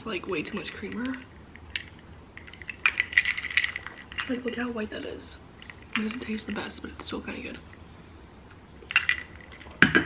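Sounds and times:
ice cubes clinking in a glass: 1.8 - 4.6, 8.9 - 9.7.

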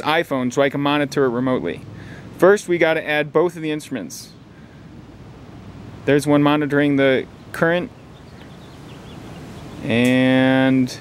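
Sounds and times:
outdoor background hiss: 0.0 - 11.0
man's voice: 9.8 - 11.0.

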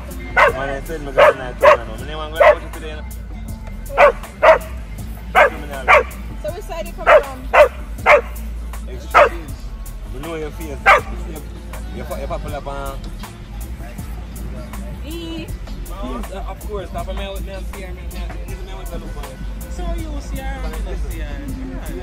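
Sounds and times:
dogs barking in play: 0.1 - 2.8, 3.9 - 6.4, 7.0 - 9.6, 10.8 - 11.3.

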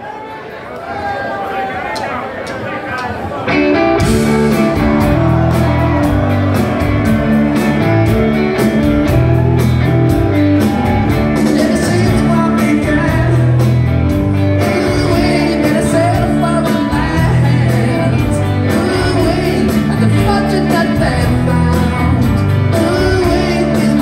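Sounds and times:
rock band playing live: 3.0 - 24.0.

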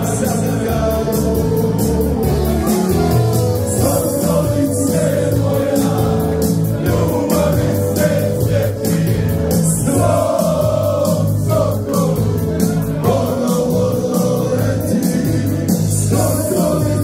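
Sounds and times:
male voices singing folk song: 0.0 - 2.5, 3.6 - 17.0
crowd singing along: 0.0 - 17.0
keyboard with steady beat: 0.0 - 17.0
folk band playing: 1.2 - 10.2.

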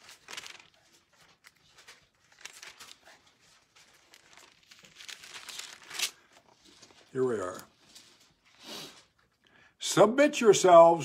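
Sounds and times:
pages rustling: 0.0 - 9.1.

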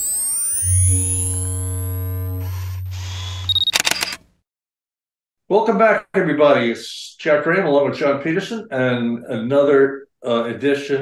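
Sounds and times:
low synth drone: 0.0 - 3.5
steady higher synth tones: 0.0 - 3.5
short high beep: 0.6 - 4.2
camera shutter clicks: 2.5 - 4.3.

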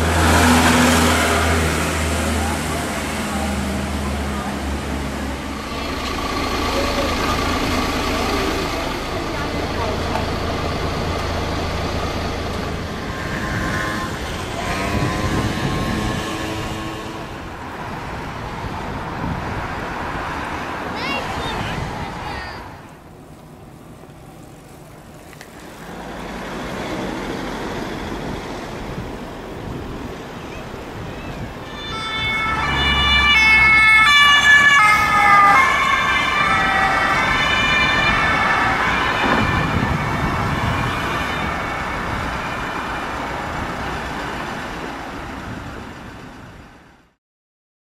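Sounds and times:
road traffic noise: 0.0 - 47.2
two-tone siren: 13.1 - 17.5, 31.6 - 43.3.

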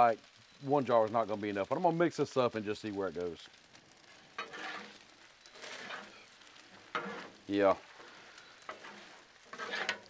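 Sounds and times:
food sizzling quietly: 0.0 - 10.0
metal spatulas scraping griddle: 4.2 - 10.0.

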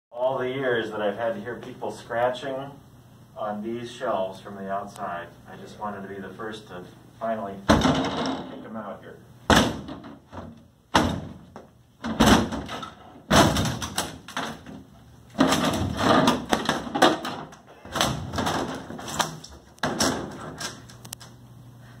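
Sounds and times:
kicks banging on wooden panel: 7.7 - 8.5, 9.5 - 19.2.

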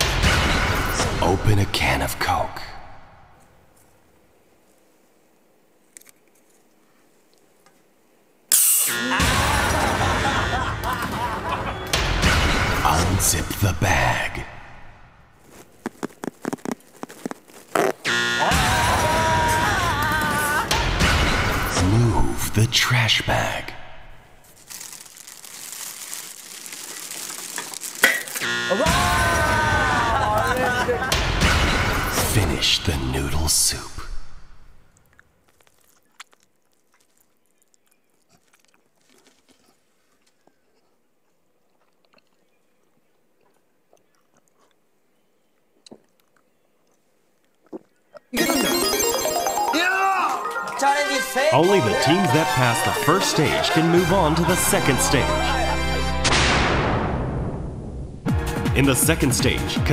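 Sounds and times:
soft eating sounds: 3.7 - 8.2, 24.5 - 28.4, 34.9 - 48.4
zipper opening: 15.4 - 18.1
game-show buzzer: 48.4 - 52.1
loud music: 48.4 - 56.4.

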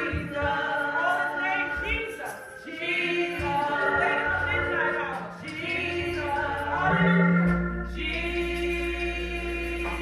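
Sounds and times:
congregation singing a gospel song: 0.0 - 10.0.

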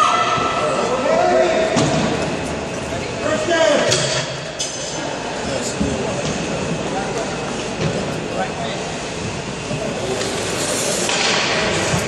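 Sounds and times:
skate blades scraping on ice: 10.0 - 12.0.

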